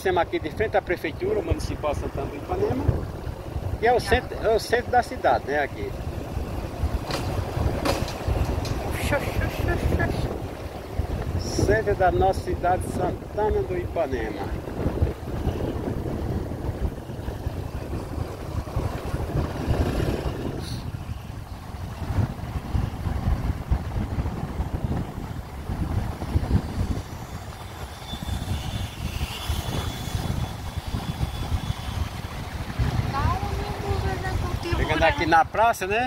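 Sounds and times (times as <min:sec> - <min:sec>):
road noise: 0:00.0 - 0:36.0
wind rumble on microphone: 0:00.0 - 0:36.0
motorcycle engine: 0:01.4 - 0:35.3.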